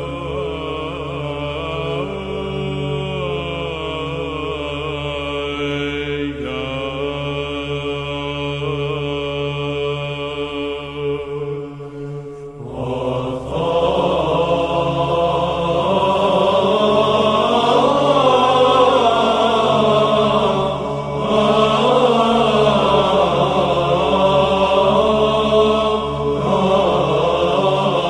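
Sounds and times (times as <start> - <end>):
low held drone: 0.0 - 28.0
male choir chanting: 0.0 - 28.0.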